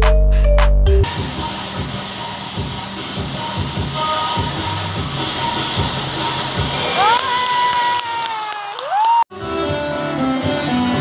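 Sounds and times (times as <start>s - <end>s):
smoke flares hissing: 1.1s - 7.4s.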